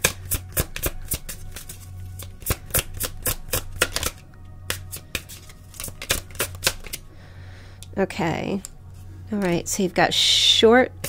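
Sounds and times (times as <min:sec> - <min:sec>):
cards being shuffled: 0:00.0 - 0:07.1
soft background music: 0:00.0 - 0:11.0.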